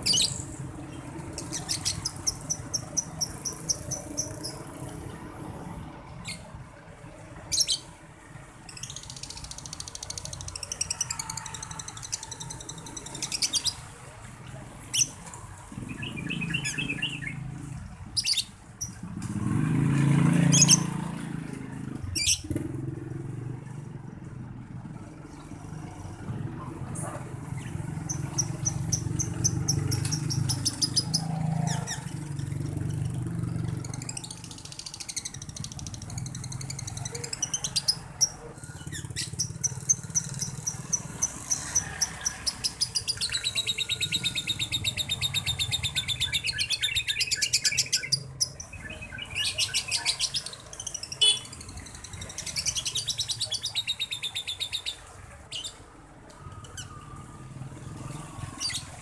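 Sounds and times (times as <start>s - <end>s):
lovebird rapid high chirps: 0.0s - 4.9s, 8.7s - 13.8s, 22.2s - 22.5s, 27.6s - 32.2s, 33.8s - 55.8s
low vehicle engine rumble: 0.0s - 59.0s.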